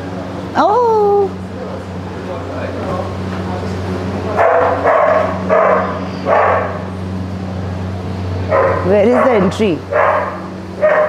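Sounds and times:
steady low hum: 0:00.0 - 0:11.0
dog barking: 0:04.4 - 0:06.9, 0:08.5 - 0:11.0.

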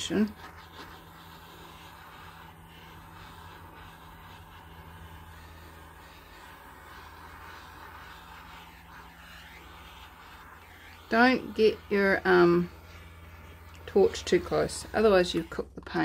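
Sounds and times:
gas torch hissing: 0:00.0 - 0:15.8.

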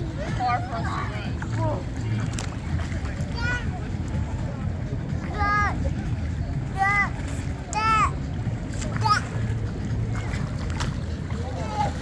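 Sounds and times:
child wading through water: 0:00.3 - 0:12.0.

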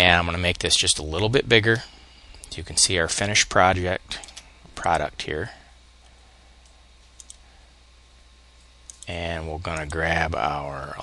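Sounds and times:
low steady background hum: 0:00.0 - 0:11.0
faint computer mouse clicks: 0:06.6 - 0:07.4.

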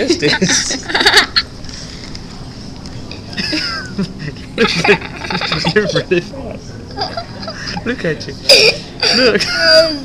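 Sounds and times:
low room noise: 0:00.0 - 0:10.0
high-pitched laughter: 0:04.6 - 0:06.1.

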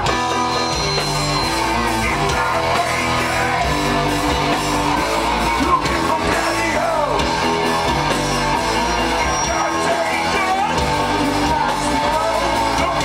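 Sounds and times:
bass and drums: 0:00.0 - 0:13.0
electric guitars chugging riff: 0:00.0 - 0:13.0.

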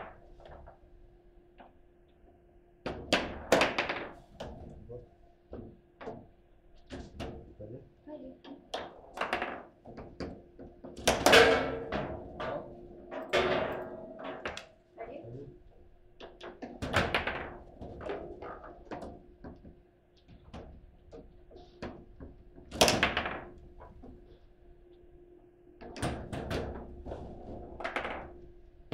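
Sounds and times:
table football knocks and clicks: 0:02.9 - 0:04.6, 0:08.5 - 0:12.2, 0:16.2 - 0:24.2, 0:27.6 - 0:28.4.

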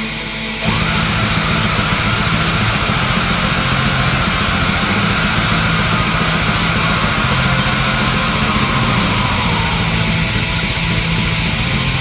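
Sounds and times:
distorted guitars: 0:00.0 - 0:12.0
rapid drumming: 0:00.6 - 0:12.0.

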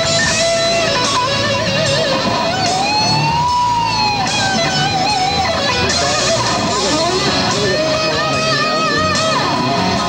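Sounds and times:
electric guitar lead with vibrato: 0:00.0 - 0:10.0.

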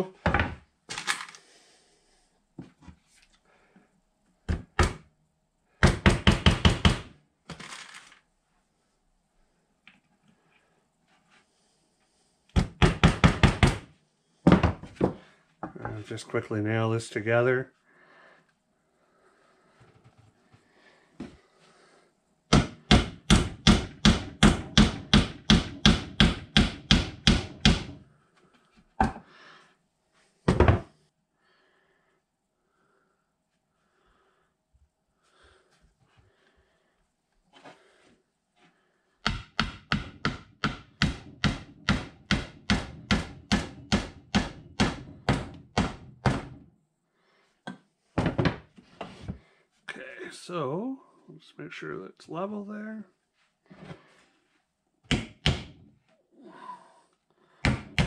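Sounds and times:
hammer driving nails into wood: 0:05.8 - 0:07.2, 0:12.5 - 0:13.9, 0:22.5 - 0:28.0, 0:39.2 - 0:46.6, 0:55.1 - 0:55.8, 0:57.6 - 0:58.0.

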